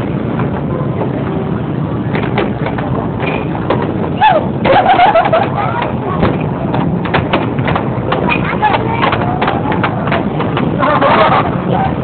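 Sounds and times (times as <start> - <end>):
air hockey pucks clacking: 2.1 - 11.5.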